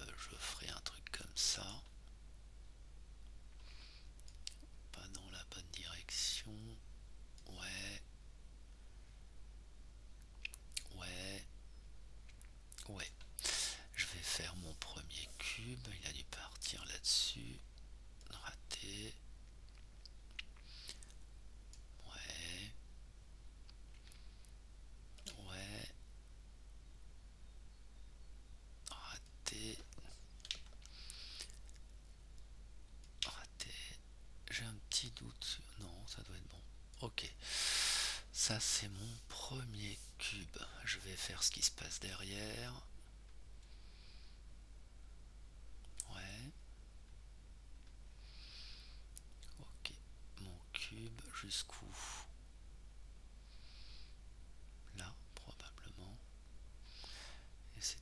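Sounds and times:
man muttering and whispering: 0.0 - 1.9, 4.4 - 6.8, 7.4 - 8.1, 10.5 - 11.5, 12.8 - 19.2, 22.0 - 22.8, 25.2 - 26.0, 28.8 - 30.3, 33.2 - 42.9, 46.0 - 46.6, 49.5 - 52.4, 54.9 - 56.3, 57.7 - 58.0
breathy hiss: 3.6 - 4.2, 13.4 - 15.9, 20.6 - 21.1, 30.8 - 31.6, 37.2 - 40.8, 43.6 - 44.5, 48.1 - 49.1, 51.7 - 52.4, 53.4 - 54.2, 56.8 - 58.0
faint clicks: 4.2 - 5.2.

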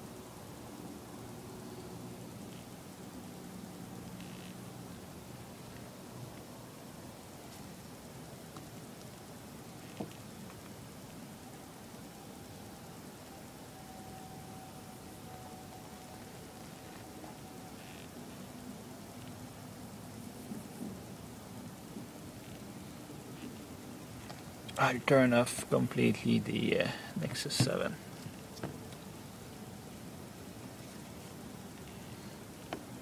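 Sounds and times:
faint hum: 0.0 - 33.0
low background hiss: 0.0 - 33.0.

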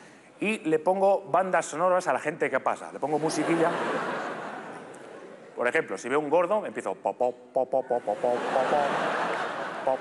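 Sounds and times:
audience laughter: 3.1 - 5.5, 8.0 - 10.0.

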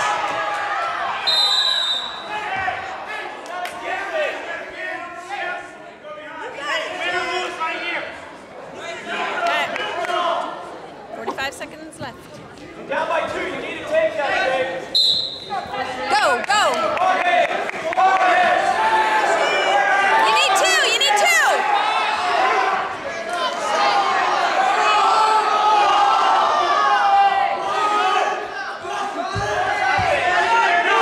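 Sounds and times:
spectators' voices: 0.0 - 31.0
referee's whistle blast: 1.2 - 2.4, 14.9 - 15.6
background chatter: 2.3 - 25.0.

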